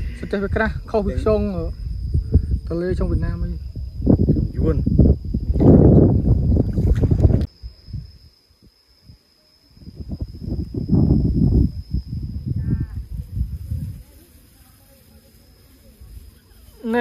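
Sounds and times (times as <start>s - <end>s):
wind buffeting microphone: 0.0s - 8.2s, 9.8s - 14.4s.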